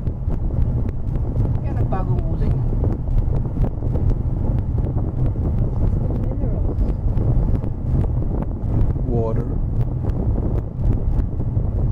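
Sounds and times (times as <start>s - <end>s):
road and wind noise in car: 0.0s - 11.9s.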